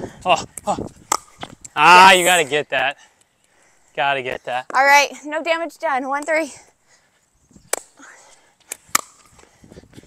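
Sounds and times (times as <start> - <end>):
pickleball pops: 1.1 - 1.5, 8.7 - 9.4.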